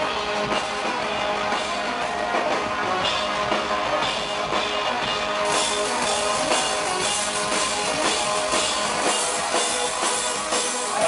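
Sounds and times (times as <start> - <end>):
loud industrial rock band: 0.0 - 11.0.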